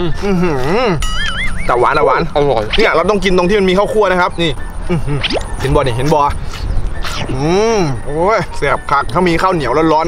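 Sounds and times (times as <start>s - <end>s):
man speaking: 0.0s - 1.0s, 1.6s - 6.4s, 7.2s - 10.0s
man humming mmm while chewing: 0.0s - 1.1s
warbling electronic sound effect: 1.0s - 6.3s, 7.0s - 9.0s.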